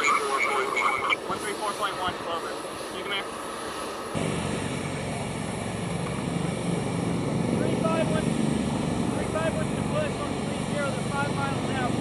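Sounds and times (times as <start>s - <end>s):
distant aircraft engine drone: 0.0s - 12.0s.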